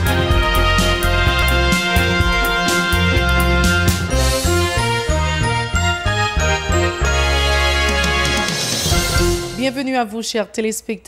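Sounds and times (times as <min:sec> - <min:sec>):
news theme music: 0:00.0 - 0:10.2.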